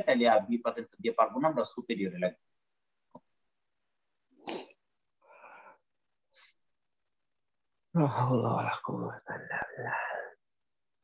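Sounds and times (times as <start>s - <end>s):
person breathing: 4.4s - 6.6s, 9.5s - 10.4s.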